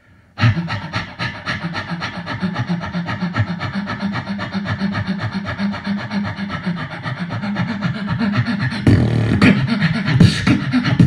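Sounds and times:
beatboxing into microphone: 0:00.4 - 0:11.0.

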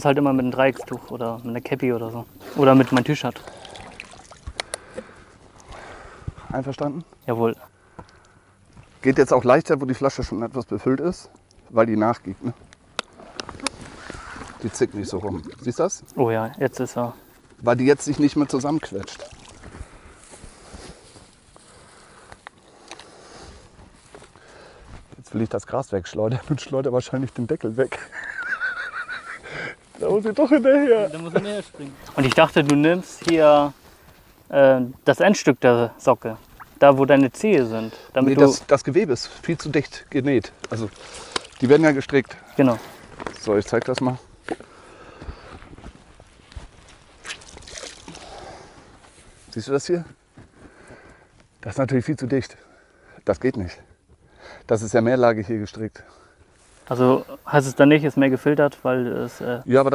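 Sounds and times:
stream water splashing: 0:00.0 - 0:04.6, 0:15.3 - 0:17.4, 0:19.0 - 0:19.7, 0:31.9 - 0:38.6, 0:40.7 - 0:43.0, 0:47.2 - 0:48.3
water draining through cloth: 0:00.2 - 0:04.6, 0:19.0 - 0:19.7, 0:47.2 - 0:48.3
wet cloth rustling: 0:31.2 - 0:38.6.

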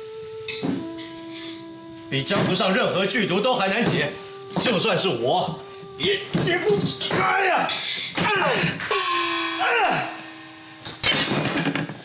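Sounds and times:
short falling vocal cry: 0:08.2 - 0:10.3.

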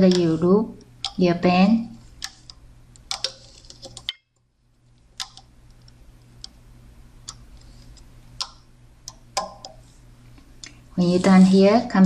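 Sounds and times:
low steady hum: 0:00.0 - 0:12.0
rubber bands clicking on plastic pegs: 0:02.2 - 0:04.2, 0:08.4 - 0:09.8.

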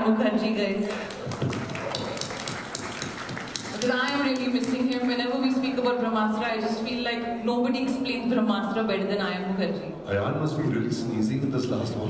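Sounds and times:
applause in a hall: 0:00.8 - 0:05.5.

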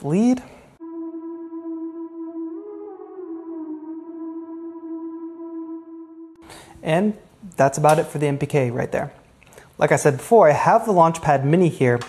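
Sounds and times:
synth lead held note: 0:00.8 - 0:06.7.

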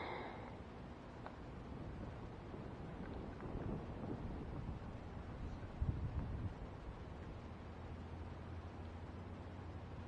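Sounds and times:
wind buffeting microphone: 0:01.3 - 0:07.6.

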